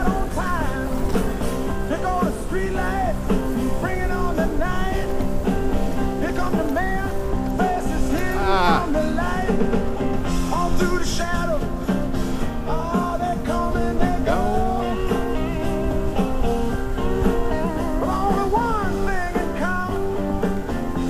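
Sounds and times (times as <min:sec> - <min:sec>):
rock song with singing: 0:00.0 - 0:21.0.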